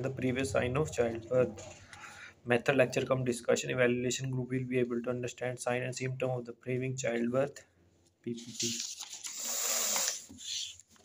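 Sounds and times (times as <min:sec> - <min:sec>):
paper rustling: 0:08.3 - 0:11.0.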